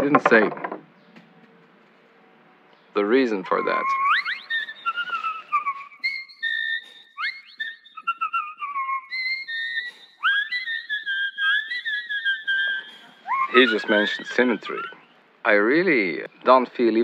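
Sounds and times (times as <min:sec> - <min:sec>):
high whistled notes: 0:03.4 - 0:15.2.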